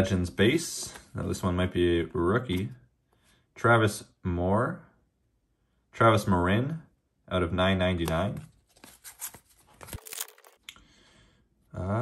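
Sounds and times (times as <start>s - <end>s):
trading cards rustling and sliding: 8.0s - 10.6s.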